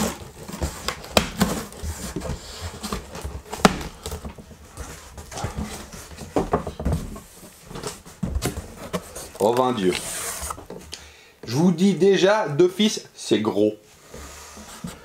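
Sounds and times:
cardboard scraping and rustling: 0.0s - 10.8s, 14.0s - 15.0s.

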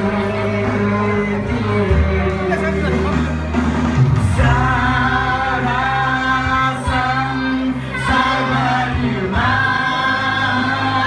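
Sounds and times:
man singing through pa: 0.0s - 2.8s, 4.3s - 11.0s
backing music with bass line: 0.0s - 11.0s
voices singing along: 0.0s - 11.0s.

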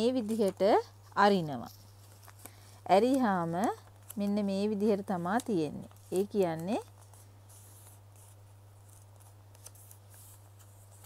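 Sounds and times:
low electrical hum: 0.0s - 11.0s
paper rustling and crinkling: 0.2s - 11.0s.

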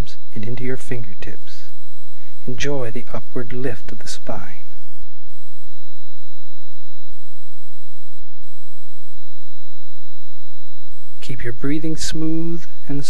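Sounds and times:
high-pitched whine: 0.0s - 13.0s
low hum: 0.0s - 13.0s.

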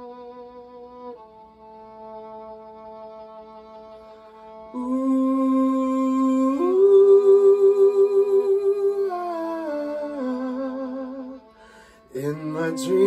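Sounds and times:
sustained violin: 0.0s - 13.0s
man singing wordless vocalise: 4.8s - 13.0s.

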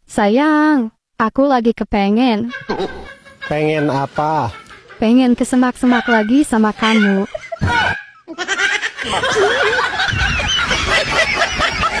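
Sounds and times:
high-pitched cackling laughter: 2.4s - 12.0s.

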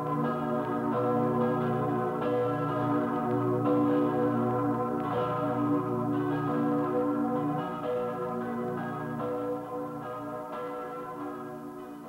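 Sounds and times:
church bells ringing: 0.0s - 12.0s.

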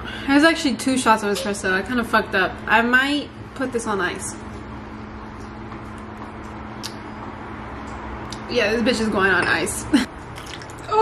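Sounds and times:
kitchen low hum: 0.0s - 11.0s.

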